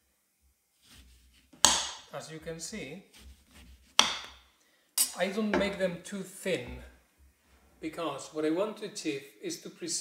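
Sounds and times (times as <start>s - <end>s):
knife cutting through orange: 3.1s - 4.4s.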